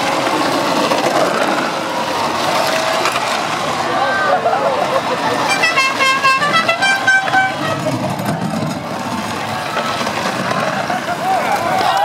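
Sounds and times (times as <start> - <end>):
plastic wheels rumbling on asphalt: 0.0 - 12.0
crowd shouting: 1.6 - 12.0
horn tooting short notes: 5.4 - 8.0.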